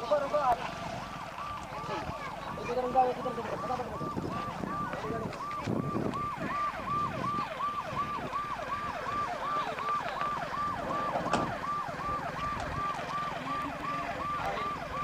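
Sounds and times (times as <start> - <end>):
electronic siren yelping: 0.6 - 15.0.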